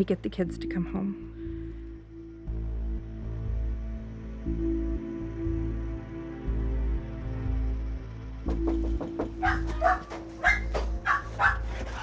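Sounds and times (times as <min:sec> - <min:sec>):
quiet background music: 0:00.0 - 0:12.0
dogs barking: 0:09.2 - 0:12.0.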